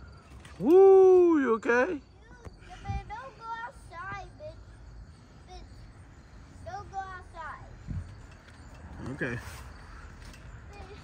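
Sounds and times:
wind rumble on microphone: 0:07.8 - 0:09.2.

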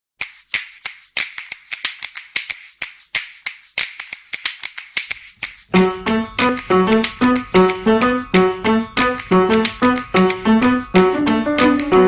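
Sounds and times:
sharp clicks with hiss: 0:00.2 - 0:05.7
plucky keyboard music: 0:05.7 - 0:12.0.

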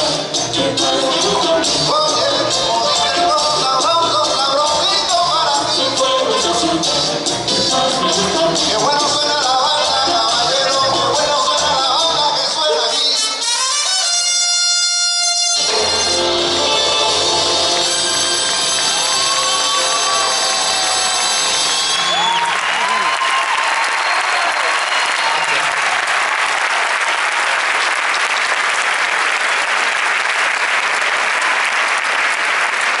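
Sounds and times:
audience applause: 0:15.7 - 0:33.0.

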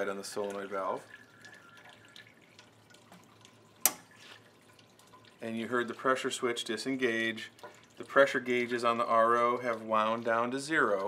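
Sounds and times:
faint water dripping: 0:00.0 - 0:11.0.

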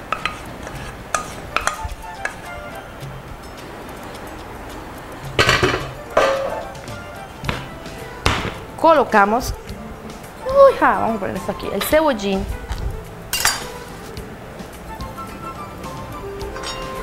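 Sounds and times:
scraping and clatter of pans: 0:00.0 - 0:01.8, 0:05.4 - 0:06.8, 0:13.4 - 0:13.8
pans clinking: 0:00.0 - 0:02.4, 0:05.3 - 0:06.9, 0:13.3 - 0:13.9, 0:16.5 - 0:17.0
soft background music: 0:00.0 - 0:17.0.

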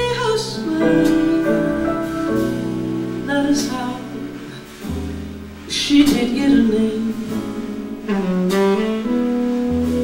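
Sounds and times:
quiet bass accompaniment: 0:00.0 - 0:10.0
tenor saxophone jazz ballad: 0:00.0 - 0:10.0.

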